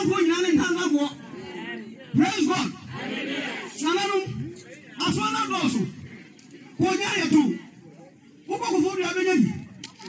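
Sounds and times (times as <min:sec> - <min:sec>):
man preaching loudly: 0:00.0 - 0:01.2, 0:02.1 - 0:02.8, 0:05.0 - 0:05.9, 0:06.8 - 0:07.6, 0:08.5 - 0:09.6
congregation calling back: 0:00.0 - 0:06.0.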